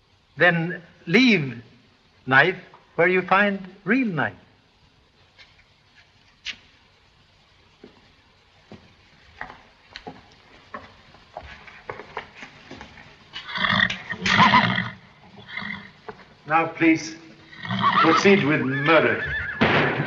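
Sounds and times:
faint footstep knocks: 7.8s - 13.0s
horse whinnying: 13.4s - 16.0s, 17.5s - 20.0s.

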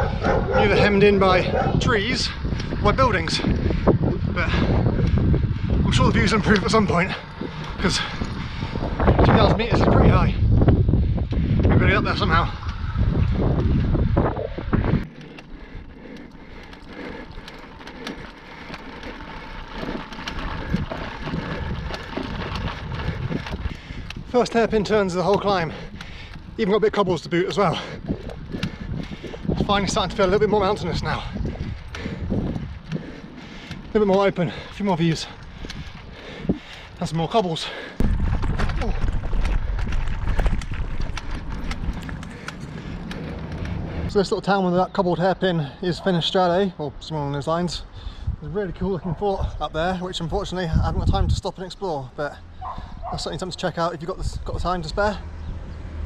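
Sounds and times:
bike rattling over cobblestones: 0.0s - 56.0s
wind buffeting microphone: 0.0s - 56.0s.

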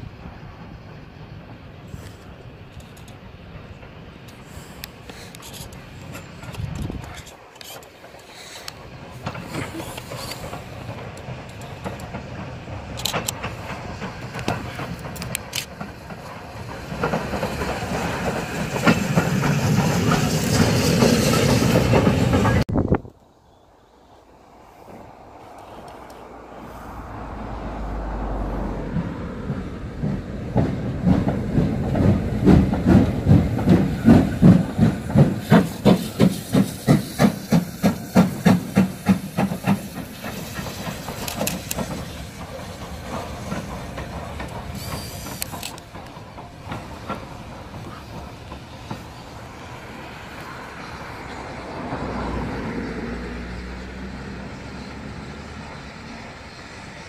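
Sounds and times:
steam hiss: 0.0s - 22.6s, 29.6s - 57.0s
steam locomotive chuffing: 0.0s - 22.7s, 24.1s - 57.0s.

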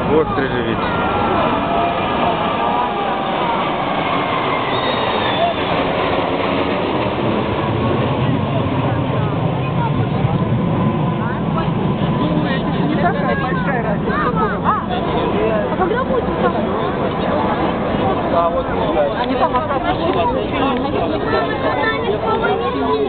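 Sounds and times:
crowd voices: 0.0s - 23.0s
fighter jets flying overhead: 0.0s - 23.0s.

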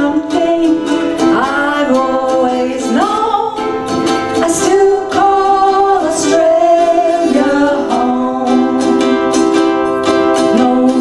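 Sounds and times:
people singing: 0.0s - 3.6s, 4.4s - 11.0s
ukuleles strummed: 0.0s - 11.0s.

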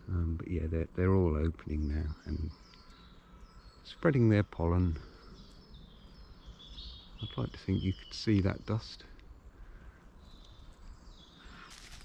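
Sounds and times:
faint birdsong: 0.0s - 12.0s.

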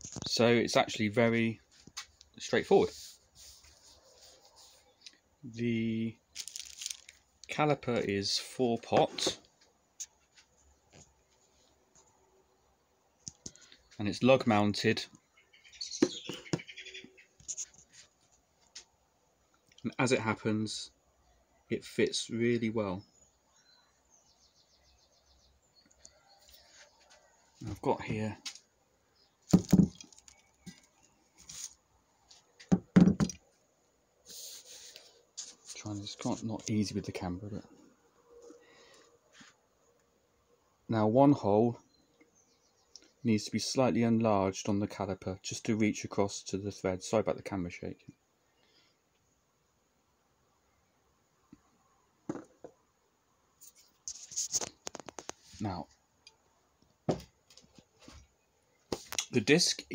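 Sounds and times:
plastic sheet rustle: 6.4s - 7.2s
faint knocks and rustles: 56.8s - 59.2s.

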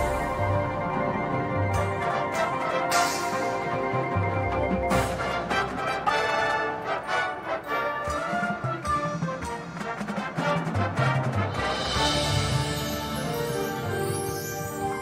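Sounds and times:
marching band playing: 0.0s - 15.0s
sharp percussion hits: 10.0s - 13.9s.

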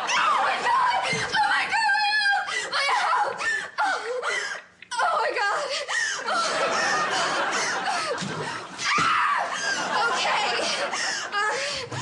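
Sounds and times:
studio audience laughing: 6.2s - 8.8s, 9.4s - 11.6s.

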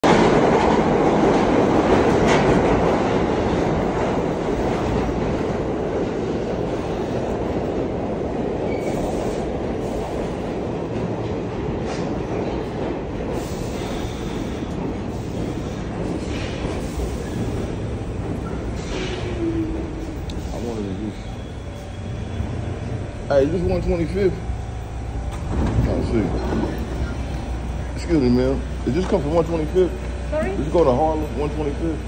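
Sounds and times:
subway train wheels rumbling and clacking: 0.0s - 32.0s.

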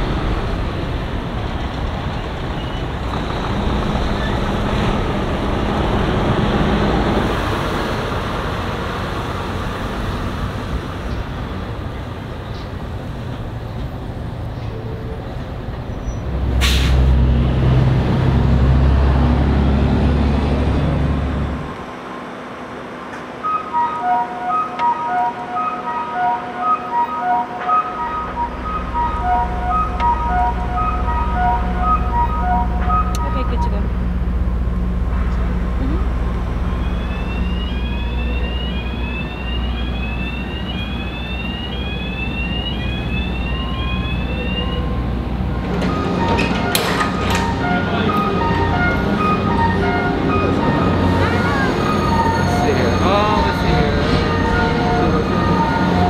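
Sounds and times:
diesel truck engine rumbling: 0.0s - 56.0s
rising electronic tones: 23.4s - 34.6s, 35.6s - 45.2s
electronic beeps on three pitches: 23.5s - 33.9s.

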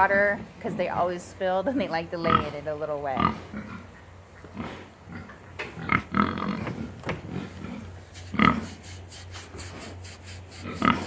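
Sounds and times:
steady low hum: 0.0s - 11.0s
pigs grunting: 2.2s - 8.8s, 10.6s - 11.0s.

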